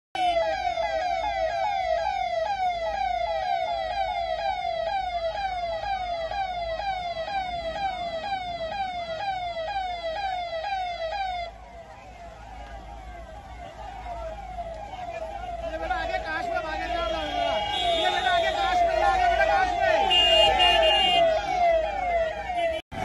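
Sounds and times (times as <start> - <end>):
electronic siren yelping: 0.2 - 22.8.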